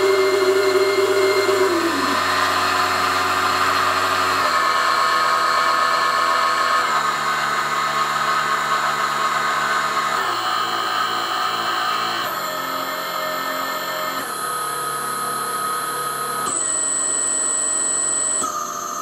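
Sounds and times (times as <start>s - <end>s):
electric motor whine: 0.0s - 19.0s.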